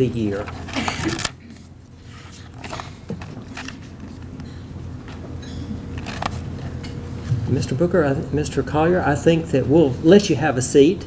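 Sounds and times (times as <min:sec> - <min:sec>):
room tone: 0:00.0 - 0:11.0
tableware clinking: 0:05.4 - 0:05.8.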